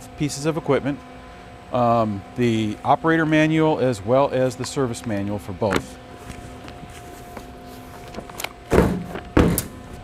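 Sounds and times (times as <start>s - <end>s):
faint steady hum: 0.0s - 10.0s
paper stack thumping on metal table: 8.7s - 9.8s.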